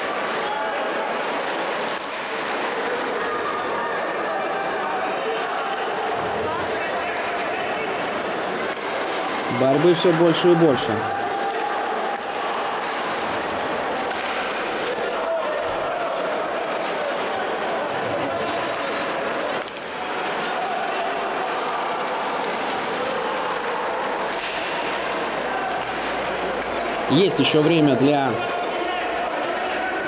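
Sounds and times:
crowd murmur: 0.0 - 30.0
hockey play on ice: 0.0 - 30.0.

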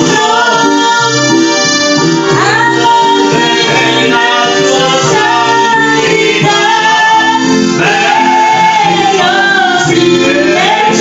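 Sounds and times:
woman singing worship song: 0.0 - 1.5, 2.2 - 11.0
instrumental accompaniment: 0.0 - 11.0.

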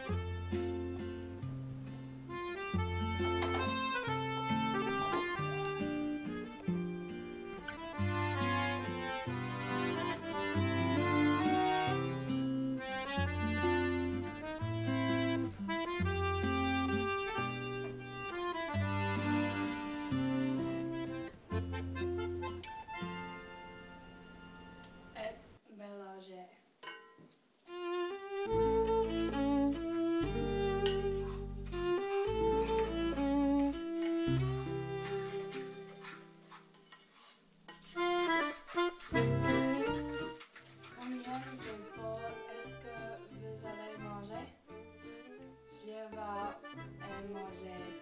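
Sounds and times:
accordion music: 0.0 - 25.2, 27.7 - 36.7, 37.8 - 48.0.

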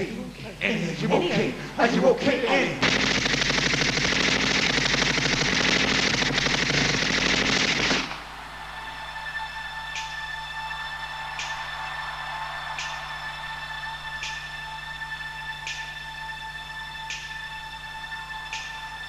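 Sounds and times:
machine-gun fire sound effect: 2.8 - 8.2.

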